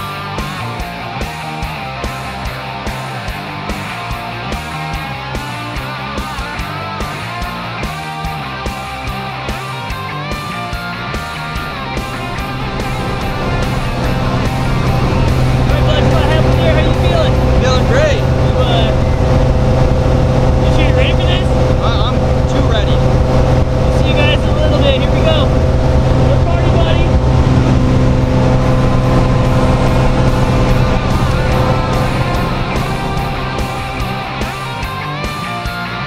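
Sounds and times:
small plane engine drone in cabin: 0.0s - 36.0s.

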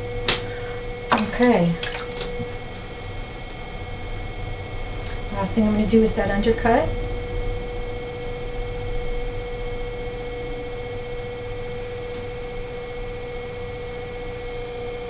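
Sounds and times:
potter's wheel motor humming: 0.0s - 15.0s.

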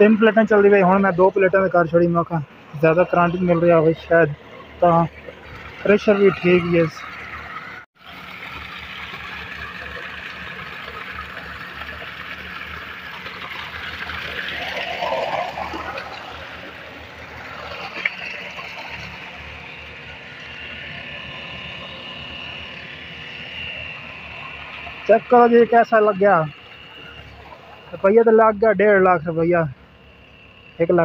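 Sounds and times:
water gushing into tank: 5.3s - 22.0s.

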